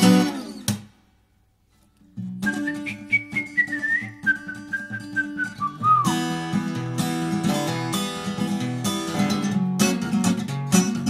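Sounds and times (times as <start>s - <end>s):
acoustic guitar: 0.0s - 11.0s
whistled melody: 2.4s - 6.2s.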